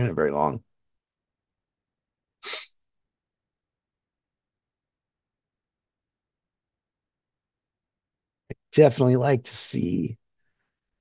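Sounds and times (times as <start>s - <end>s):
man's sharp burst of breath: 2.4s - 2.8s.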